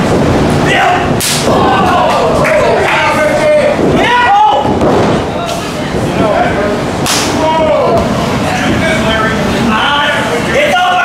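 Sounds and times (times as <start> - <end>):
voices shouting: 0.6 - 4.8
sharp slap: 1.2 - 1.6, 7.0 - 7.4.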